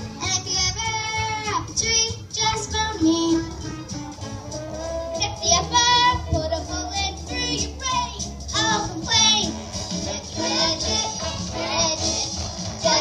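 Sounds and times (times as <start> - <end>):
musical accompaniment: 0.0 - 13.0
children singing: 8.6 - 13.0.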